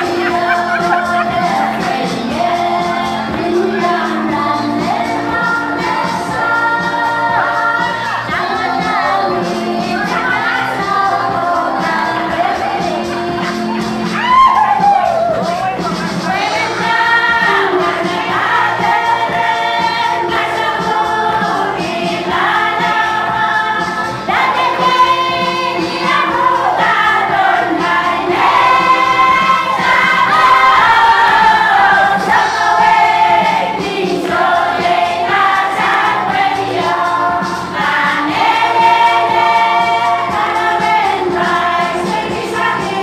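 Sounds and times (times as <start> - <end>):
women's choir singing: 0.0 - 14.8, 16.2 - 43.0.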